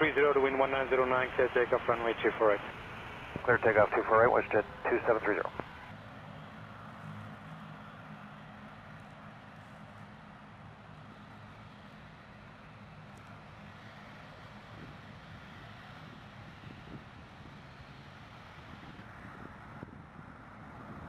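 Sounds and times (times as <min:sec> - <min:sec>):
jet engines idling: 0:00.0 - 0:06.0
faint rushing noise: 0:00.3 - 0:05.9.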